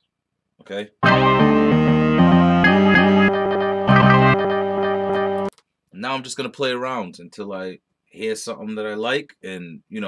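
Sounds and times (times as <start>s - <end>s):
sliced music sample chops: 1.0s - 5.5s.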